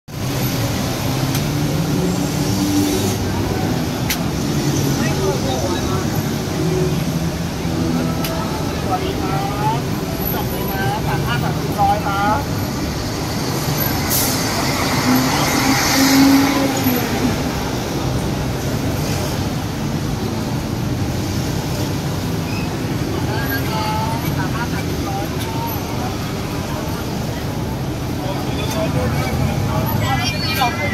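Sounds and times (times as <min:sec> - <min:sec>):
vehicle engines rumbling: 0:00.1 - 0:30.9
people talking: 0:03.0 - 0:12.8, 0:23.0 - 0:30.9.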